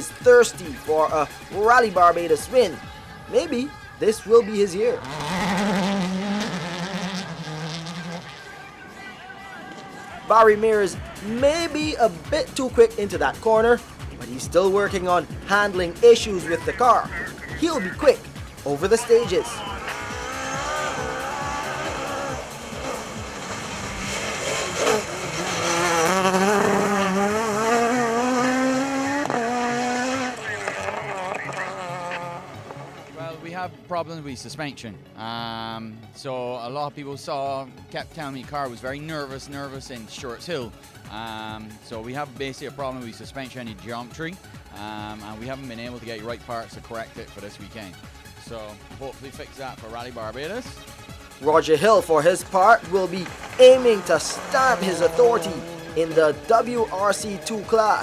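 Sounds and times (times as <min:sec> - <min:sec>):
rally car engine running hard: 0:05.0 - 0:08.5, 0:16.4 - 0:33.2, 0:52.5 - 0:58.0.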